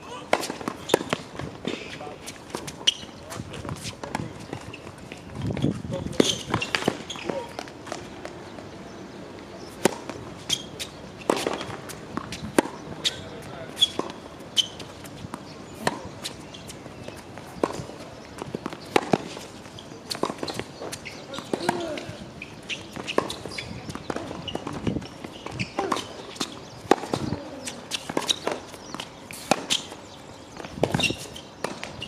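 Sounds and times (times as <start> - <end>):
tennis ball bounces: 0.3 - 1.9, 2.5 - 8.7, 9.4 - 32.0.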